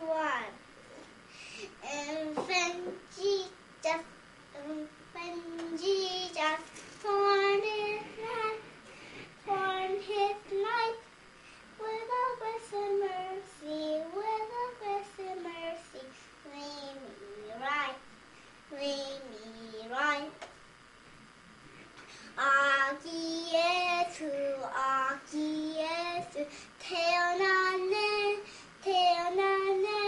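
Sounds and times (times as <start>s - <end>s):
girl singing alone: 1.8s - 8.7s, 9.4s - 11.2s, 11.8s - 18.1s, 18.7s - 20.4s, 22.3s - 30.0s.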